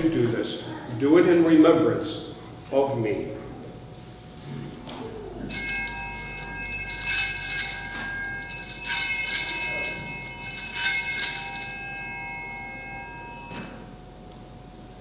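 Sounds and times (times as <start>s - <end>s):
small bright bells shaken: 5.5s - 13.6s.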